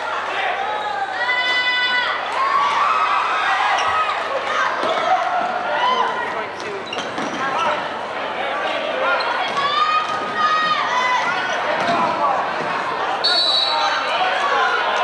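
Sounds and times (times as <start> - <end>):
crowd voices and shouting: 0.0 - 15.0
referee's whistle blast: 13.2 - 14.0.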